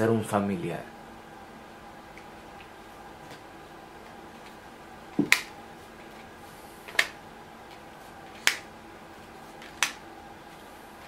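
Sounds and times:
playing cards snapped down: 8.4 - 8.7.

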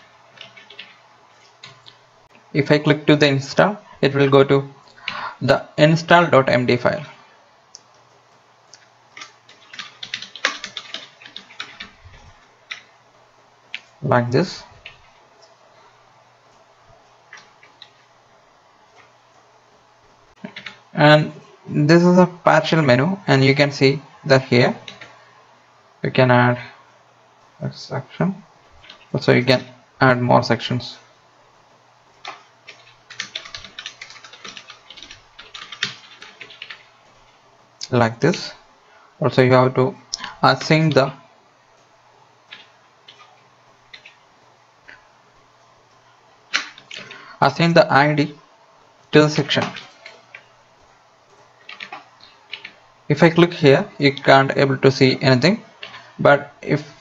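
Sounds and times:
faint room hiss: 0.0 - 57.0
faint keyboard clicks: 0.4 - 2.0, 17.3 - 18.0, 32.2 - 37.3, 49.5 - 52.8.

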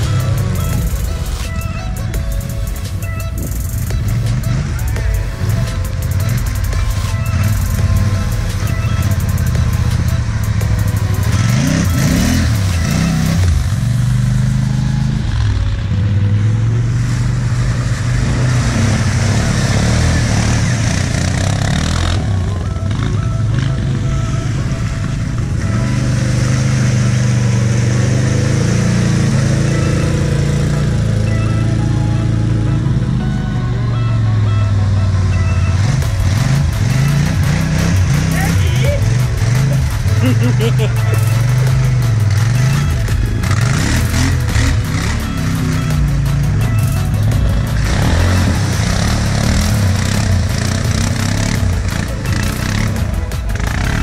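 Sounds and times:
background music: 0.0 - 54.0
quad engines revving: 0.0 - 54.0.

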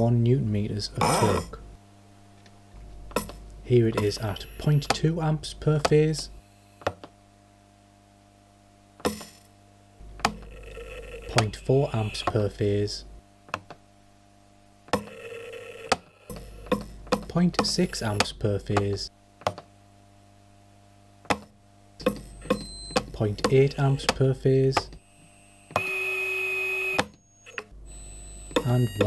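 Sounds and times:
faint electrical motor hum: 0.0 - 29.0
high-pitched electronic beep: 3.2 - 4.9, 11.2 - 12.3, 22.4 - 23.0.

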